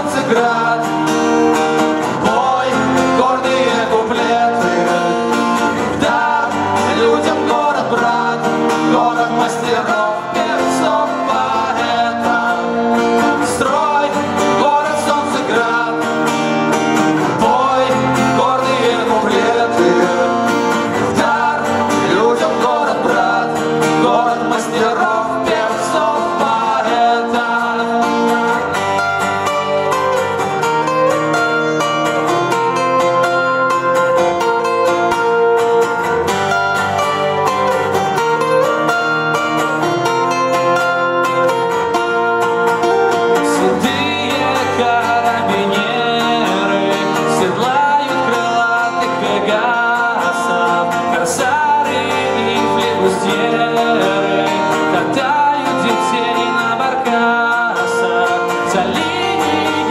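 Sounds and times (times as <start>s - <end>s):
man singing: 0.0s - 29.0s, 43.3s - 59.9s
acoustic guitars playing chords: 0.0s - 59.9s.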